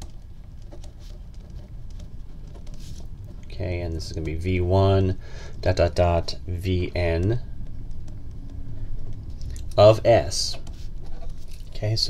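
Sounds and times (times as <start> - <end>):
pen scratching on paper: 0.6 - 3.1.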